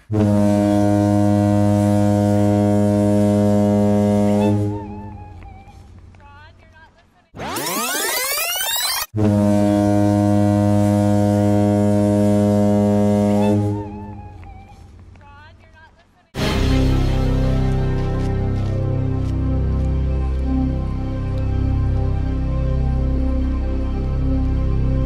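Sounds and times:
low foghorn-like blast: 0:00.0 - 0:05.4, 0:09.2 - 0:14.4, 0:16.4 - 0:25.0.

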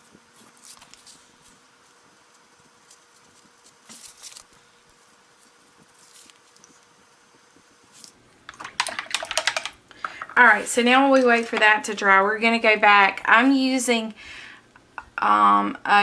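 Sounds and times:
tools clicking and rattling: 0:08.5 - 0:10.4.

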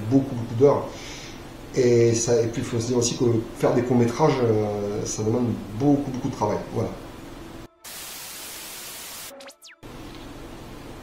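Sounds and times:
electronic static hiss: 0:04.8 - 0:10.3.

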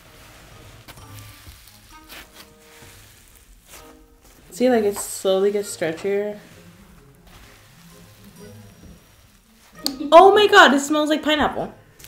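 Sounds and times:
quiet background music: 0:00.0 - 0:12.0
slime crackly sizzles: 0:00.0 - 0:12.0.

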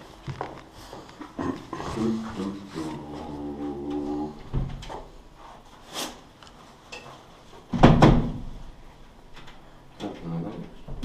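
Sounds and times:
heavy door thump: 0:07.7 - 0:08.6.

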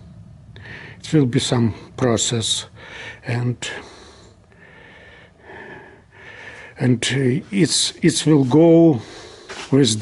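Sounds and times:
faint breathing: 0:00.5 - 0:01.1, 0:02.6 - 0:07.6, 0:08.9 - 0:09.8
person speaking: 0:06.7 - 0:10.0.

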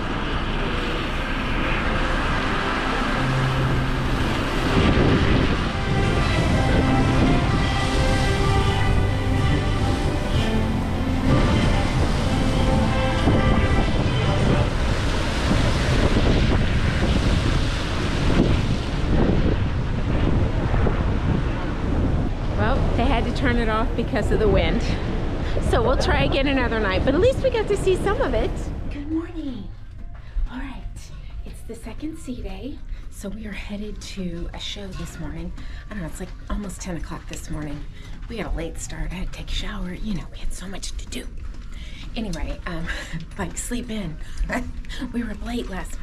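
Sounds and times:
faint music playing: 0:00.0 - 0:46.0
wind buffeting microphone: 0:00.0 - 0:46.0.

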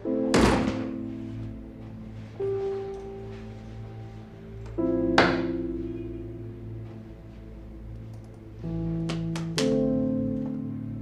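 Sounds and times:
background music sustained notes: 0:00.0 - 0:11.0
door shutting with thud: 0:00.3 - 0:01.0.

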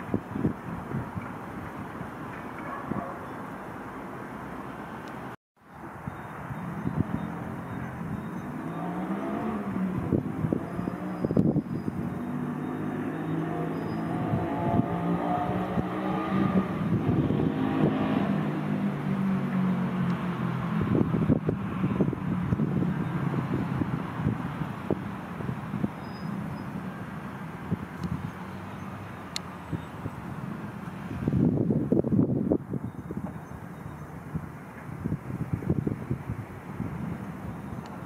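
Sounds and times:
engine running with wavering pitch: 0:06.7 - 0:32.3.

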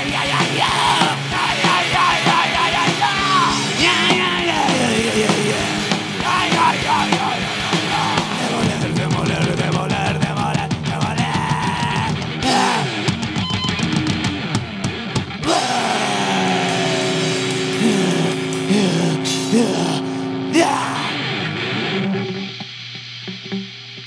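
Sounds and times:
heavy rock band playing: 0:00.0 - 0:22.6
electric guitar chords ringing: 0:12.2 - 0:24.0
quick drum hits: 0:15.2 - 0:18.9.

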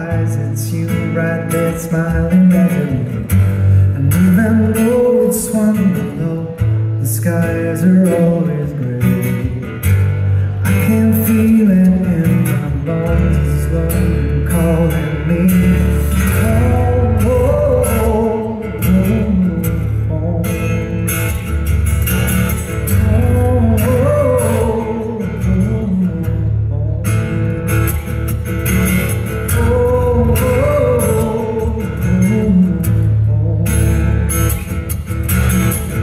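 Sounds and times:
acoustic guitar: 0:00.0 - 0:36.0
person singing: 0:22.9 - 0:27.4, 0:29.5 - 0:34.3.

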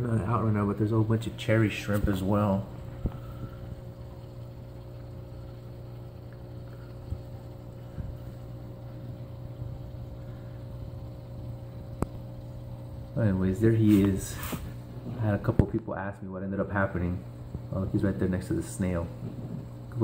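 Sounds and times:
aquarium filter motor hum: 0:00.0 - 0:20.0.

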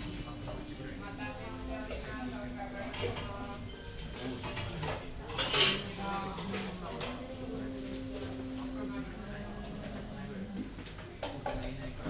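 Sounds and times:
dishes and cutlery clinking: 0:01.2 - 0:08.4, 0:10.8 - 0:12.0.

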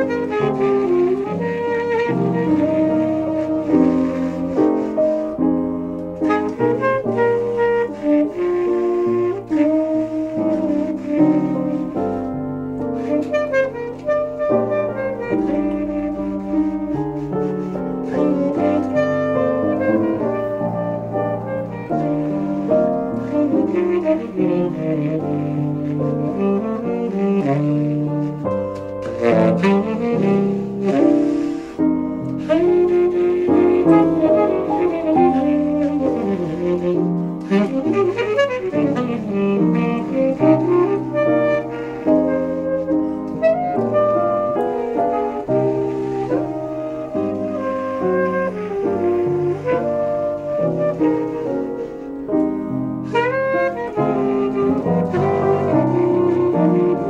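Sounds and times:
piano accompaniment: 0:00.0 - 0:57.0
tenor saxophone melody: 0:00.0 - 0:57.0.

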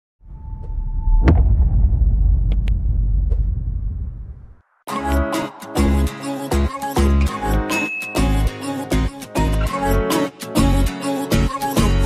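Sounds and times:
loud deep rumbling: 0:00.2 - 0:04.7.

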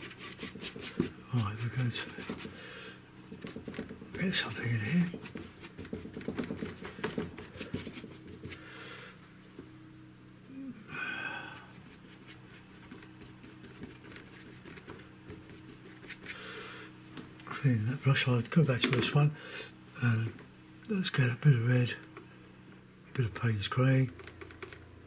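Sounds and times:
brush scrubbing paint on panel: 0:00.0 - 0:02.6, 0:03.3 - 0:08.7, 0:11.7 - 0:16.4
steady low hum: 0:00.0 - 0:25.0.

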